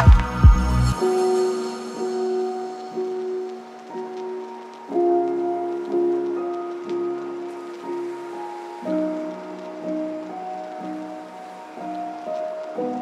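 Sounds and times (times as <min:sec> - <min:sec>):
electronic music with slow chords: 0:00.0 - 0:13.0
soft steady hiss: 0:00.0 - 0:13.0.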